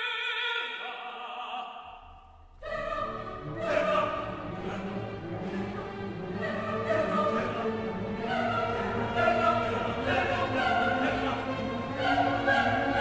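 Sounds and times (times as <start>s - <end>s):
opera chorus singing: 0.0s - 13.0s
full orchestra: 2.5s - 13.0s.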